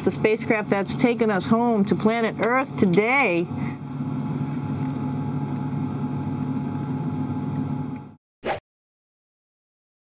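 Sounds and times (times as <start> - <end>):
ventilation fans humming: 0.0 - 8.2.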